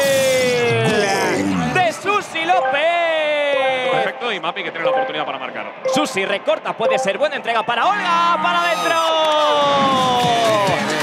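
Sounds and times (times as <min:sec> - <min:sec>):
sports commentator shouting: 0:07.2 - 0:10.8.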